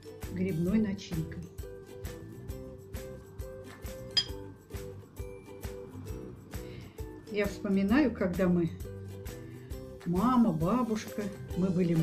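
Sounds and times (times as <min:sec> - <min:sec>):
background music with steady beat: 0:00.0 - 0:12.0
metal spoon clinking on ceramic bowl: 0:04.1 - 0:04.4.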